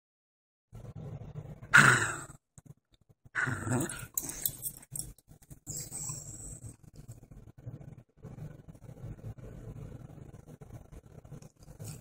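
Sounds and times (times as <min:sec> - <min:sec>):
dog growling: 0:03.4 - 0:04.3.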